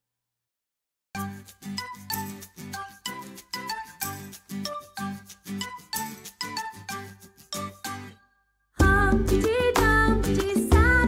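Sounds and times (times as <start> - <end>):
children's instrumental music: 1.2 - 11.0.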